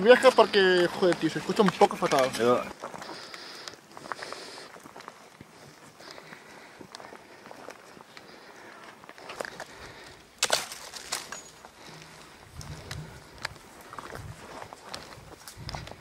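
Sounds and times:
footsteps crunching on dry trail: 0:00.0 - 0:16.0
twigs and brush crackling: 0:00.0 - 0:16.0.

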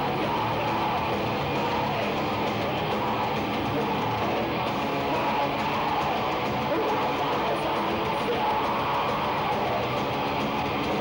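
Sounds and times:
death metal band playing live: 0:00.0 - 0:11.0
distorted electric guitars: 0:00.0 - 0:11.0.

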